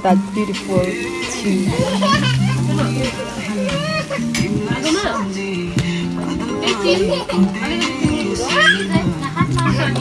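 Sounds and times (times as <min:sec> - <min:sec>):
background music: 0:00.0 - 0:10.0
toddlers laughing and calling out: 0:01.6 - 0:04.7, 0:06.4 - 0:10.0.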